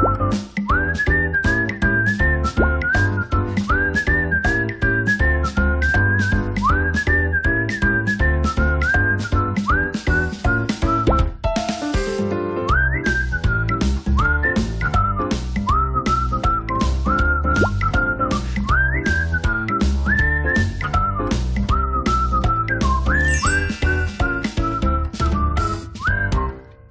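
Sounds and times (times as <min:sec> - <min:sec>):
bass line: 0:00.0 - 0:11.4, 0:12.3 - 0:26.6
whistled melody: 0:00.0 - 0:26.9
light percussion beat: 0:09.9 - 0:12.3, 0:23.1 - 0:26.0.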